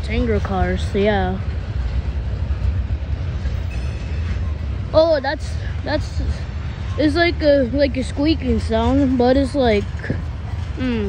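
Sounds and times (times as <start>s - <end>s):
train wheels rumbling on rail: 0.0s - 11.0s
high wheel squeak: 3.4s - 4.8s.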